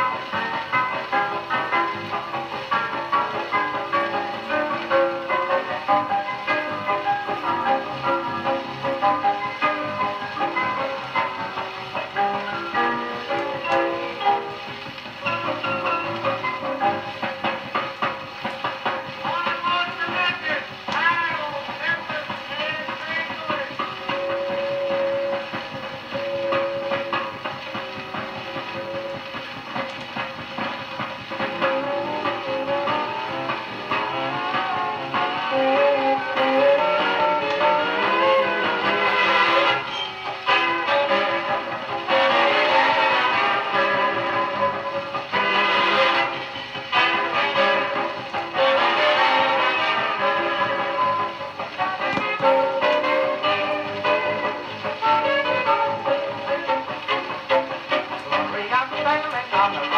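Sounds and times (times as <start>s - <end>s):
dance-band orchestra music on record: 0.0s - 59.9s.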